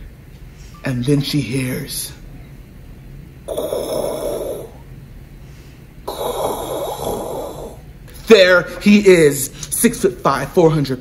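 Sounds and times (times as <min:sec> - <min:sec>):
man breathing heavily: 0:05.4 - 0:07.8.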